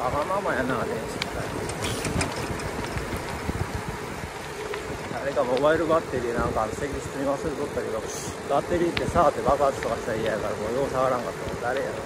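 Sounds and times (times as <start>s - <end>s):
tyre rumble on asphalt: 0.0s - 12.0s
wind rushing over microphone: 0.0s - 12.0s.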